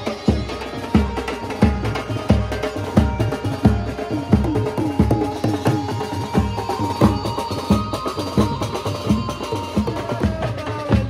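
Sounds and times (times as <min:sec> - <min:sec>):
bass drum and dhol beats: 0:00.0 - 0:11.0.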